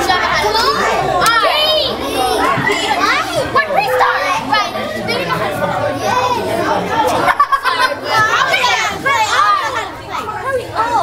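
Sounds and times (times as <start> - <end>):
girls chattering: 0.0 - 11.0.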